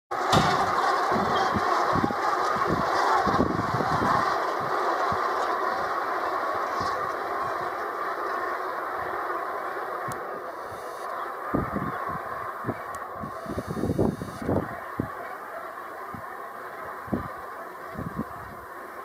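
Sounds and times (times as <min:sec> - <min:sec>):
flock of geese calling: 0:00.1 - 0:19.0
wind thumping on microphone: 0:00.3 - 0:04.8, 0:11.5 - 0:14.7.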